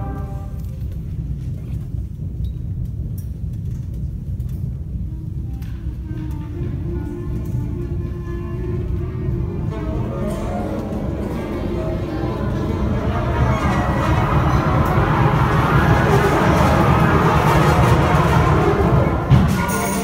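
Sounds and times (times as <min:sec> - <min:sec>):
concert band playing: 0:09.2 - 0:20.0.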